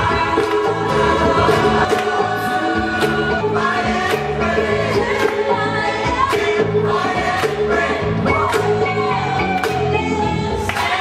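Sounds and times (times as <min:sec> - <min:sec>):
gospel choir singing: 0:00.0 - 0:11.0
live band playing: 0:00.0 - 0:11.0.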